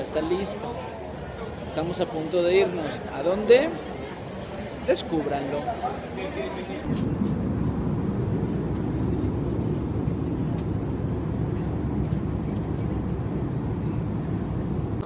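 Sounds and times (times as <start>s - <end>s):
airliner engines rumbling: 0.0s - 15.0s
rushing air: 6.8s - 15.0s.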